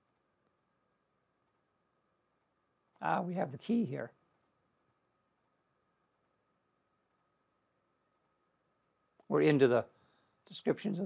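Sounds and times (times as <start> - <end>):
faint computer mouse clicks: 1.4 - 1.7, 7.0 - 7.4
man speaking: 3.0 - 4.2, 9.3 - 9.9, 10.5 - 11.0.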